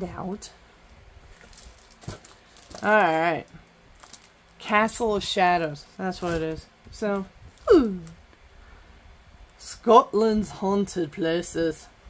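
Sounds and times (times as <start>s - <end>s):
woman speaking: 0.0s - 0.6s, 2.8s - 3.6s, 4.6s - 8.2s, 9.6s - 11.9s
paper rustling: 1.3s - 3.3s.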